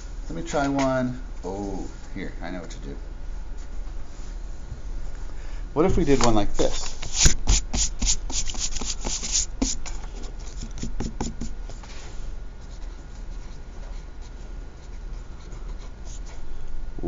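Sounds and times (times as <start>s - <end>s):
hand rubbing on paper: 6.0s - 16.4s.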